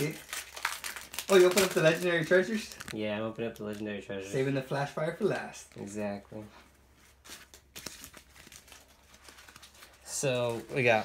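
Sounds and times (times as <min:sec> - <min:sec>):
foil wrapper tearing and crinkling: 0:00.0 - 0:03.0, 0:07.2 - 0:11.0.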